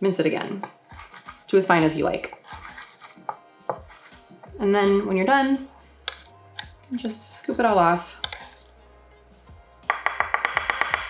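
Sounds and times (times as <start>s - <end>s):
music with quick repeated notes: 0.4s - 11.0s
metal spoon scraping steel: 0.9s - 5.2s, 8.0s - 8.8s
spoon clicking on metal: 6.0s - 6.8s, 8.2s - 8.7s.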